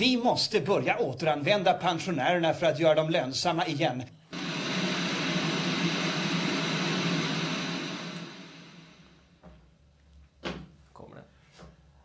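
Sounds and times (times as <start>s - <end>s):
machine-like whirring: 4.3s - 9.4s.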